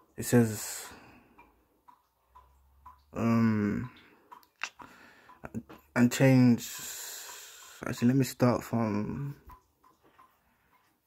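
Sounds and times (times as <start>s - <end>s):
faint evenly spaced ticks: 0.0s - 11.0s.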